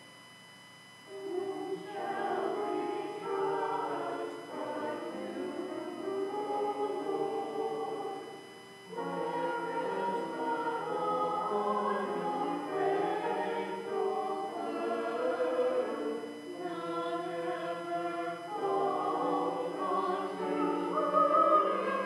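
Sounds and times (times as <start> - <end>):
church choir singing: 1.1 - 22.0.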